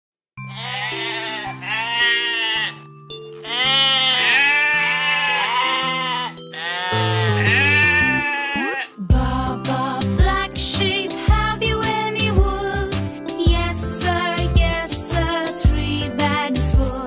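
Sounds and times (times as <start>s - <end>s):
background music of held chords: 0.4s - 17.0s
cartoon sheep bleating: 0.5s - 2.8s, 3.4s - 9.1s.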